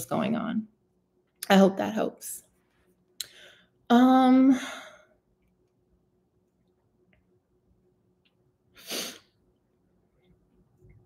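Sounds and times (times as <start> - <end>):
sharp burst of breath: 8.8 - 9.2.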